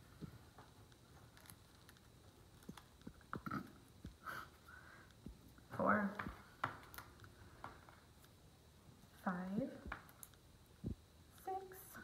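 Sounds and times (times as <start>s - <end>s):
woman speaking quietly: 11.4s - 12.0s.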